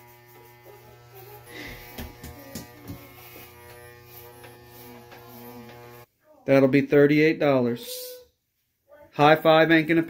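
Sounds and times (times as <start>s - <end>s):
electric hair clippers buzzing: 0.0s - 6.1s.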